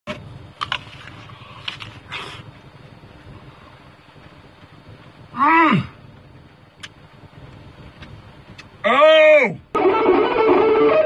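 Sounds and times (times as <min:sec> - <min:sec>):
vehicle cab rumble: 0:00.1 - 0:11.0.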